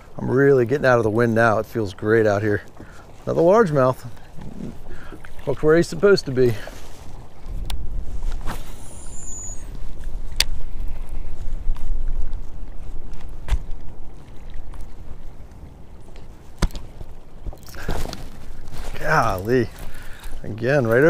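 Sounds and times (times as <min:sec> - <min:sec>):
water lapping against boat hull: 0:00.0 - 0:21.0
wind on microphone: 0:06.8 - 0:19.0.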